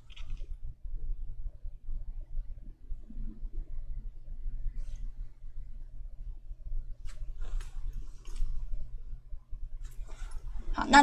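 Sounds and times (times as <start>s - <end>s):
low steady hum: 0.0s - 11.0s
woman speaking: 10.7s - 11.0s.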